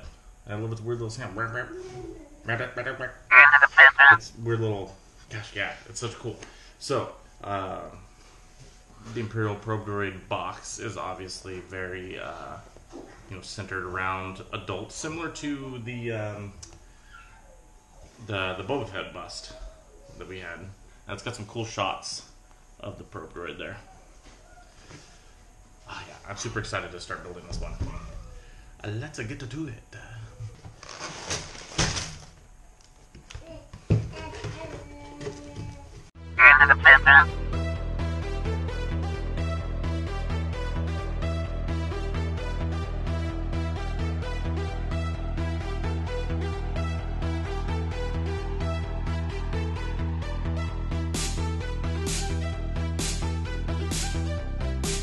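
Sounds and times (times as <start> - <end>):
man imitating electronic call: 3.3 - 4.2, 36.4 - 37.3.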